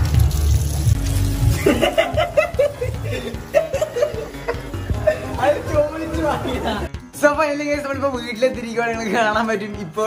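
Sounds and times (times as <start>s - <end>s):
tap water running into basin: 0.0s - 6.6s
person laughing: 1.5s - 5.7s.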